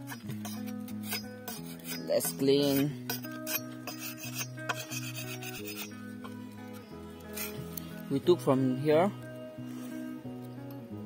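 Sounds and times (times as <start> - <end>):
machete scraping a stalk: 0.0 - 6.0, 7.2 - 7.9
background music: 0.0 - 11.0.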